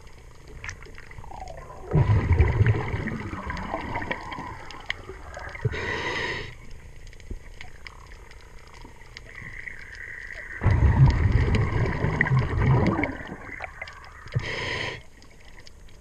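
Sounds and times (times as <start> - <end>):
rush of exhaled bubbles: 1.0 - 6.5, 9.3 - 15.0
regulator inhalation hiss: 5.6 - 6.7, 14.3 - 15.1
small clicks: 6.6 - 11.2.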